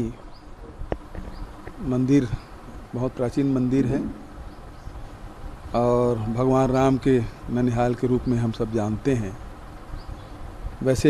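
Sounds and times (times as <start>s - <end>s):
faint low buzz: 0.0s - 11.0s
man speaking: 1.8s - 4.3s.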